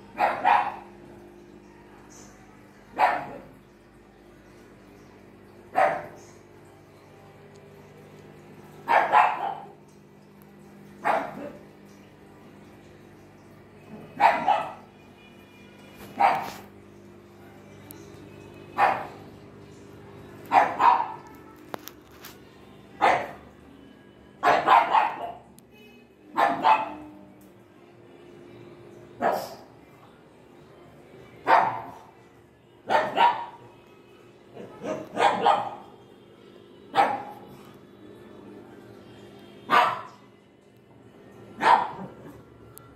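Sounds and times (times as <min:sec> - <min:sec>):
dog barking: 0:00.1 - 0:01.0, 0:02.9 - 0:03.6, 0:05.7 - 0:06.2, 0:08.8 - 0:09.8, 0:11.0 - 0:11.6, 0:14.0 - 0:14.9, 0:16.2 - 0:16.7, 0:18.8 - 0:19.3, 0:20.5 - 0:21.3, 0:23.0 - 0:23.4, 0:24.4 - 0:25.5, 0:26.3 - 0:27.1, 0:29.2 - 0:29.6, 0:31.4 - 0:32.1, 0:32.8 - 0:33.7, 0:34.6 - 0:35.9, 0:36.9 - 0:37.5, 0:39.7 - 0:40.2, 0:41.6 - 0:42.3.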